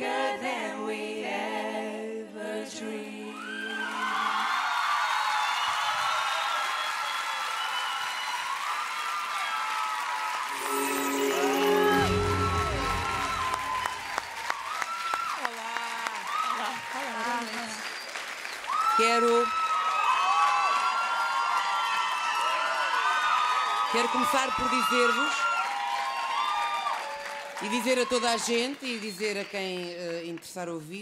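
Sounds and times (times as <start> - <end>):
audience applauding and cheering: 3.3 - 30.6
high shouting voices: 10.5 - 14.2.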